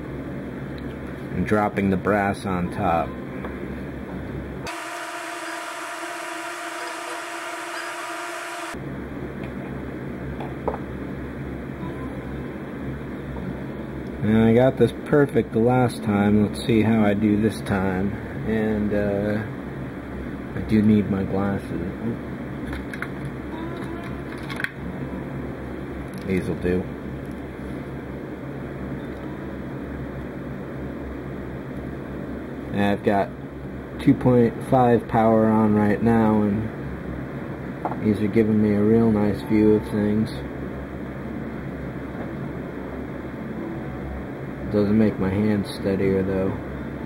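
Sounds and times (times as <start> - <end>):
low background hum: 0.0 - 47.0
higher hum with held pitches: 2.4 - 14.4, 38.2 - 47.0.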